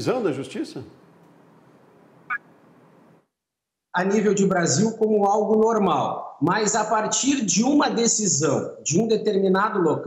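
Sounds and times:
steady background hiss: 0.0s - 3.3s.

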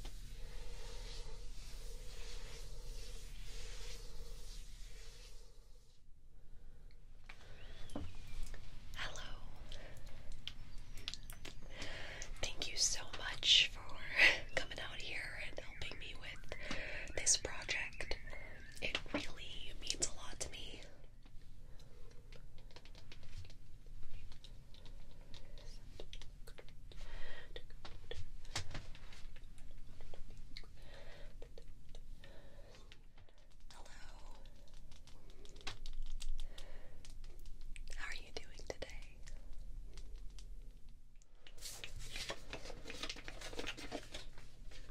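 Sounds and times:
soft whispering: 0.0s - 5.9s, 7.4s - 40.5s
woman whispering: 8.9s - 10.2s, 12.3s - 21.0s, 33.6s - 34.8s, 37.8s - 39.6s.

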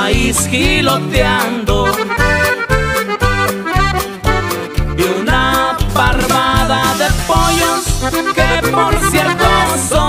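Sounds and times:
person singing: 0.0s - 2.6s, 4.9s - 10.0s
accordion: 0.0s - 10.0s
bass line: 0.0s - 10.0s
rhythm strings strumming: 0.0s - 10.0s.

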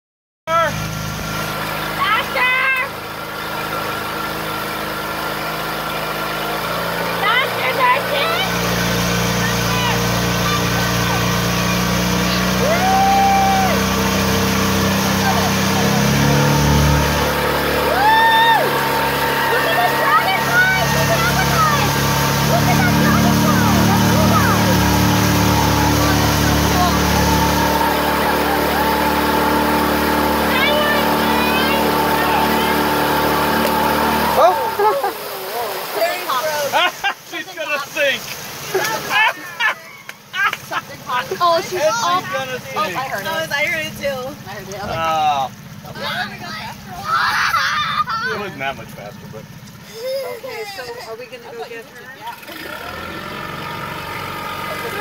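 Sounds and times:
motorboat engine running: 0.5s - 55.0s
water churning in wake: 0.5s - 55.0s
people calling and whooping: 6.6s - 16.3s, 17.4s - 37.2s, 38.7s - 45.0s, 45.9s - 53.6s.

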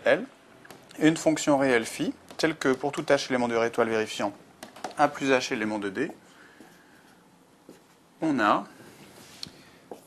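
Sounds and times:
marker tap: 0.6s - 1.0s, 2.2s - 3.2s, 4.6s - 5.0s.

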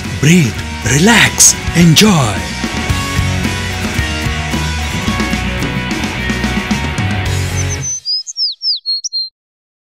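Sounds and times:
background music: 0.0s - 8.0s
bird whistled chirps: 7.5s - 9.3s.

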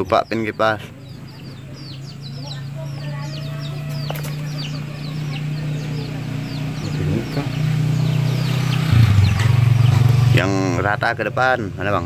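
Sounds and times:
birds chirping: 0.0s - 12.0s
low engine hum: 0.0s - 12.0s.

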